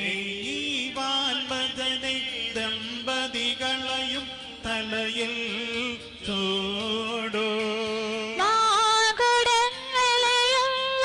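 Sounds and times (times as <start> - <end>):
woman singing a hymn: 8.4 - 11.0.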